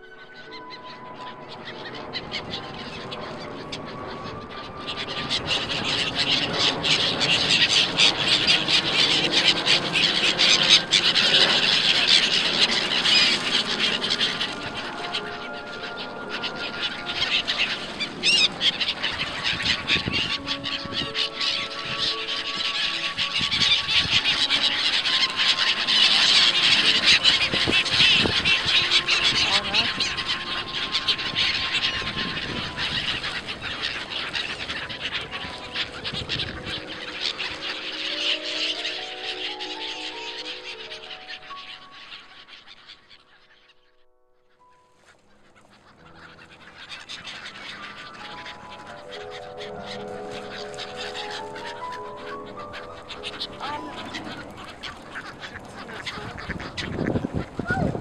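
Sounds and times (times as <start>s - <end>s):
faint sustained music tones: 0.0s - 58.0s
gulls calling: 0.0s - 58.0s
wings flapping: 2.1s - 43.7s, 44.9s - 58.0s.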